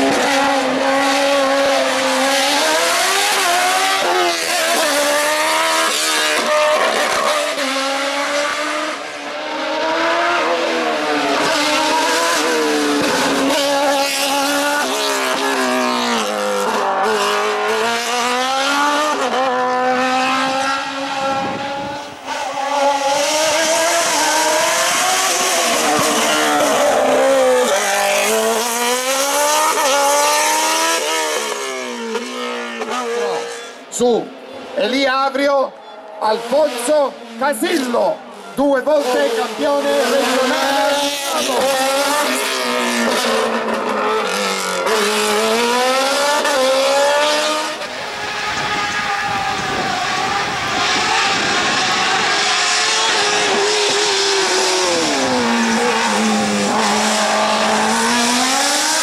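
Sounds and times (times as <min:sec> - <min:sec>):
race car engine revving: 0:00.0 - 0:35.0, 0:35.8 - 0:59.0.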